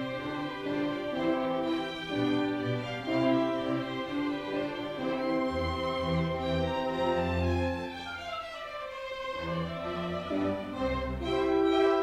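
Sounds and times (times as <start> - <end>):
orchestra strings holding notes: 0.0 - 12.0.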